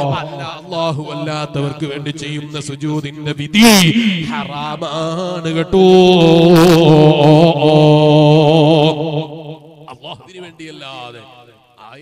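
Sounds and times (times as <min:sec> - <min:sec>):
man chanting a long note: 0:00.0 - 0:10.0.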